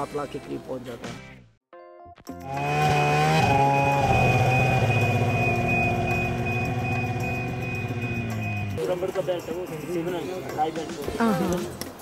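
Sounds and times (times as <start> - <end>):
snowmobile engine revving: 2.4 - 8.8.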